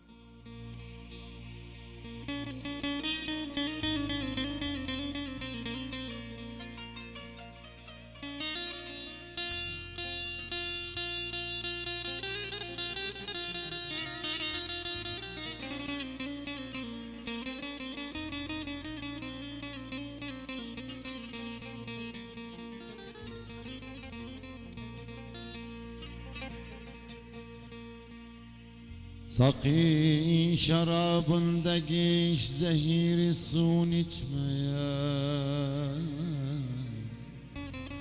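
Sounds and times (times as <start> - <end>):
electric saz melody: 0.0 - 38.0
low accompaniment: 0.0 - 38.0.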